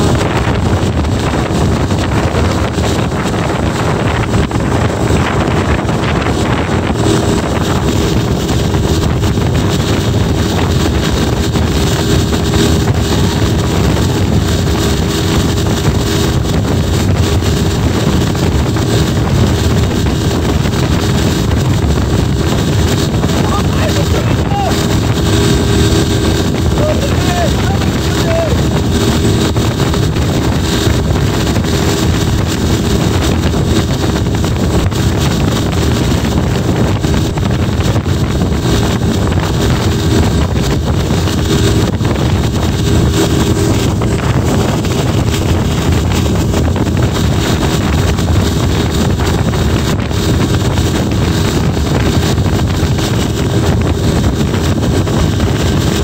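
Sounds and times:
boat engine running: 0:00.0 - 0:56.0
wake rushing: 0:00.0 - 0:56.0
wind buffeting microphone: 0:00.0 - 0:56.0.

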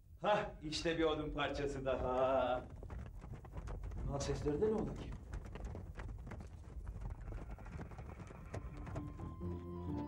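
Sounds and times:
horse hooves clopping: 0:01.0 - 0:10.0.

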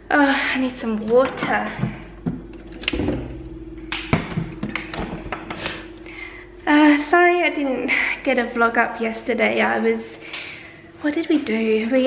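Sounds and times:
water dispenser hum: 0:00.0 - 0:12.0.

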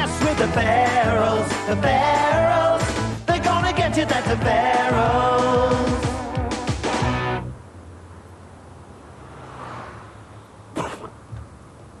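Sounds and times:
pop song with guitar and drums: 0:00.0 - 0:07.4.

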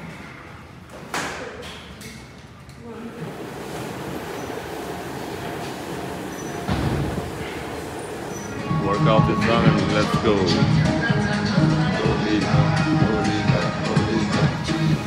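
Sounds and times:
treadmill motor hum: 0:03.0 - 0:10.4
footfalls on treadmill: 0:06.5 - 0:07.4.

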